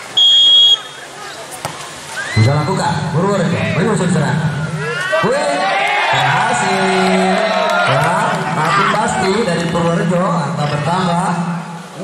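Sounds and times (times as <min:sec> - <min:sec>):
referee whistle blast: 0:00.2 - 0:01.0.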